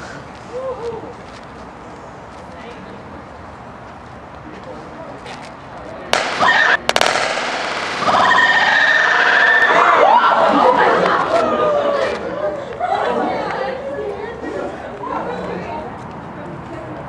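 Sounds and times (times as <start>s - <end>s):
onlookers shouting and screaming: 8.0s - 13.9s.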